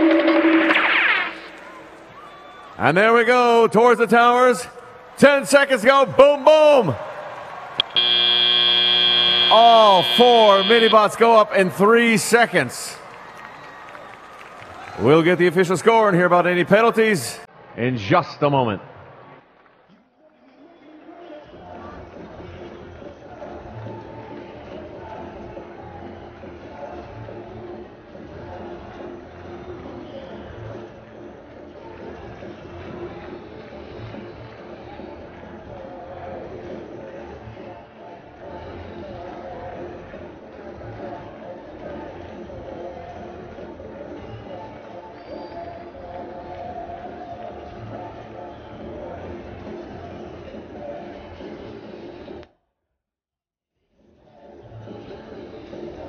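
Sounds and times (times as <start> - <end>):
harsh buzzer tone: 0.0 - 1.5, 7.8 - 11.6
crowd murmur in arena: 0.0 - 52.4, 53.9 - 56.0.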